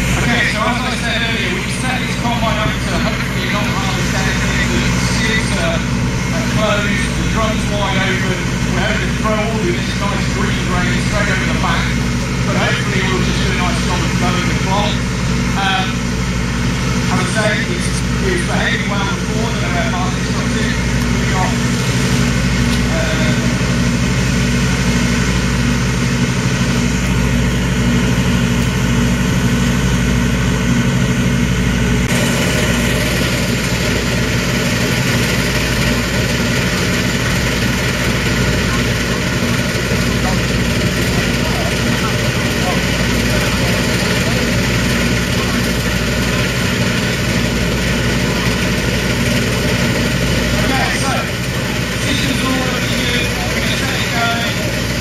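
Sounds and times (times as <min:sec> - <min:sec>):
diesel engine idling: 0:00.0 - 0:55.0.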